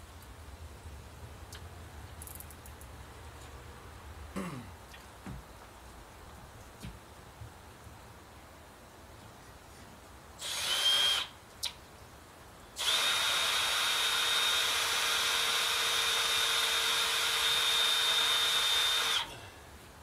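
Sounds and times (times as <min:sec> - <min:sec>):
power drill whining: 0:10.4 - 0:11.3, 0:12.8 - 0:19.3.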